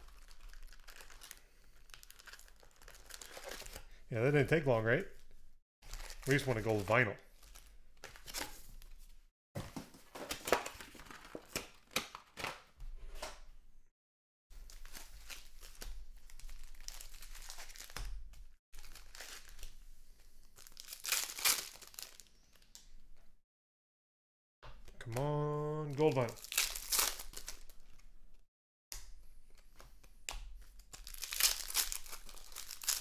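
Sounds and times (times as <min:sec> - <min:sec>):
foil wrappers crinkling and tearing: 0:00.0 - 0:03.9, 0:05.8 - 0:08.4, 0:14.6 - 0:18.1, 0:18.8 - 0:19.8, 0:20.5 - 0:22.6, 0:26.0 - 0:28.0, 0:30.7 - 0:33.0.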